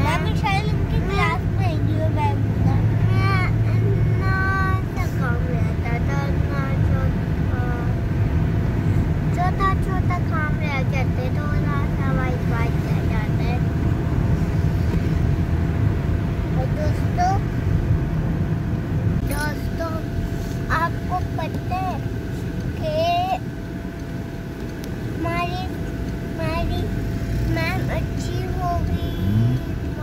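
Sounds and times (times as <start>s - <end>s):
child talking: 0.0s - 8.0s, 9.3s - 13.7s, 16.5s - 17.5s, 19.2s - 23.4s, 25.2s - 30.0s
car road and engine rumble: 0.0s - 30.0s.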